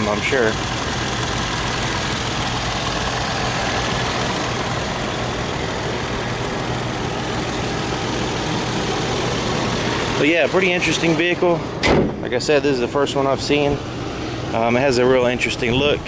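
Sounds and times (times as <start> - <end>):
car engine idling: 0.0 - 16.0.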